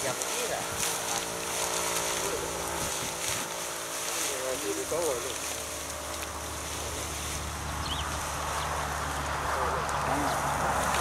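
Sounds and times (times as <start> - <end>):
dry straw rustling and crackling: 0.0 - 11.0
steady mechanical hum: 0.0 - 11.0.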